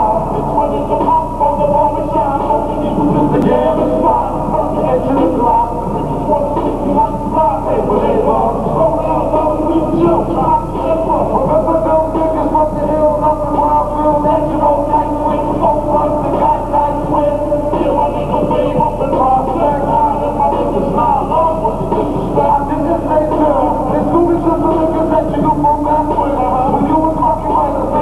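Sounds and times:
muffled backing track: 0.0 - 28.0
person rapping: 0.0 - 28.0.

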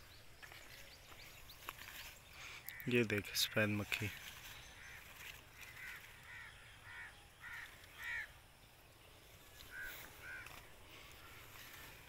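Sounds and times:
bird harsh calls: 0.5 - 8.4, 9.4 - 12.0.

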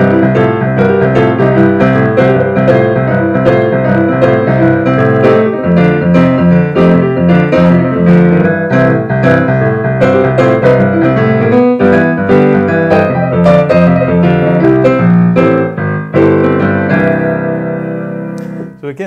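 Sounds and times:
boogie piano playing: 0.0 - 19.0.

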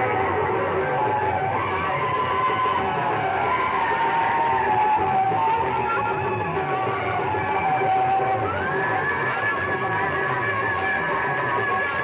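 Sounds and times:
loud music through horn loudspeakers: 0.0 - 12.0.

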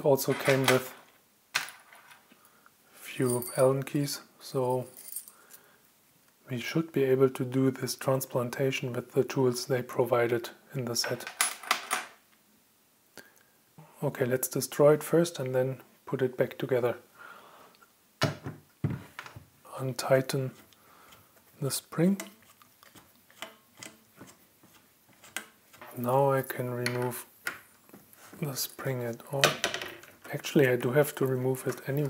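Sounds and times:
handling noise: 0.2 - 2.2, 18.2 - 19.5.

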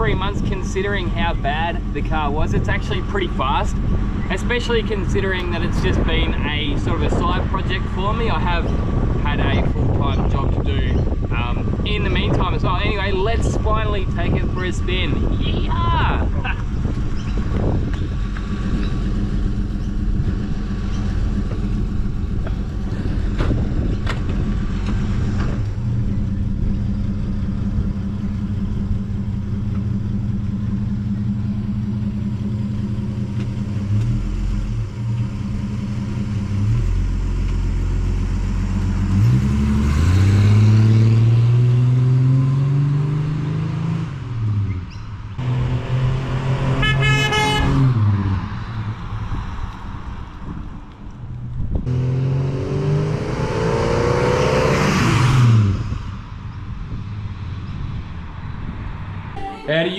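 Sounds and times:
car engine idling and revving: 0.0 - 59.9
car horn toot: 46.7 - 47.9, 59.4 - 59.9.

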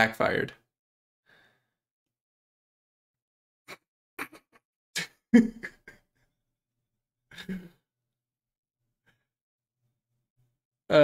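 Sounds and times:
breathy quiet laughter: 3.7 - 6.3, 7.3 - 7.8.

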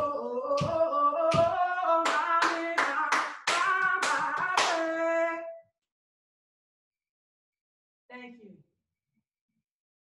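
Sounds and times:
sharp hand claps: 0.6 - 5.0.

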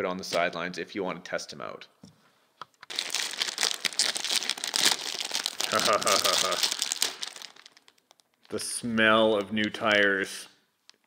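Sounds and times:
plastic bag crinkling: 2.9 - 10.1.

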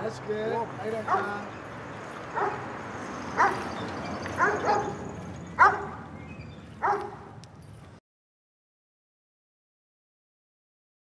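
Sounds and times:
dog yipping: 1.1 - 1.4, 2.3 - 2.6, 3.4 - 6.0, 6.8 - 7.3.

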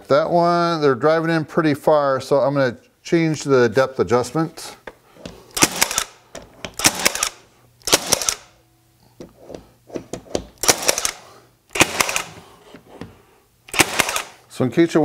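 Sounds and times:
nail gun shots into wood: 5.6 - 6.2, 6.8 - 8.5, 10.6 - 12.4, 13.7 - 14.4.

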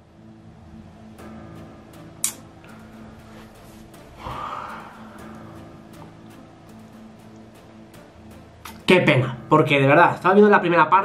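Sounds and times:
quiet background music: 0.0 - 11.0
short sharp click: 2.2 - 2.4
man sighing: 4.2 - 5.6.

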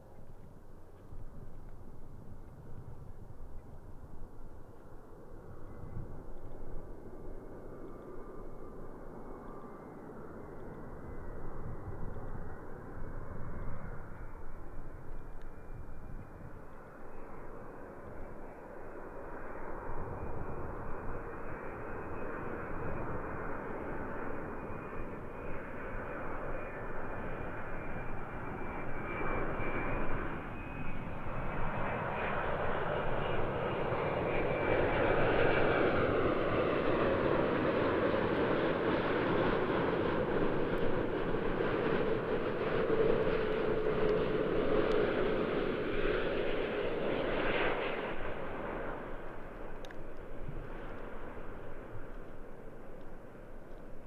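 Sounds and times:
jet airliner engines: 0.0 - 54.0.

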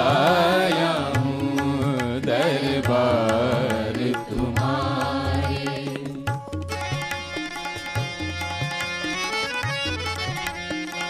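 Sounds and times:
tabla strokes: 0.0 - 11.0.

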